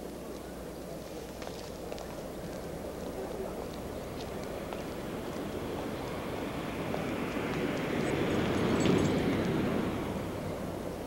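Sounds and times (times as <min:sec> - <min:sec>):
dense rushing noise: 0:01.7 - 0:11.0.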